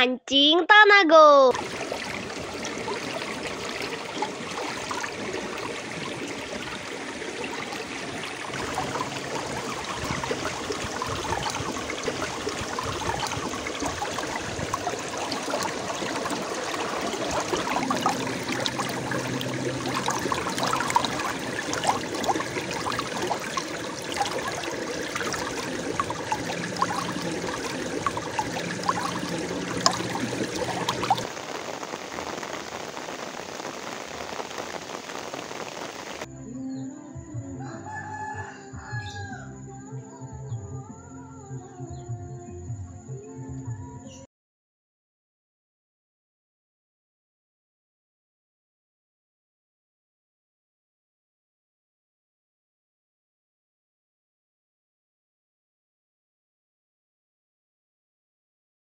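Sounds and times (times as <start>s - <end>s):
small water splashes: 1.5s - 36.3s
stream water trickling: 1.5s - 36.3s.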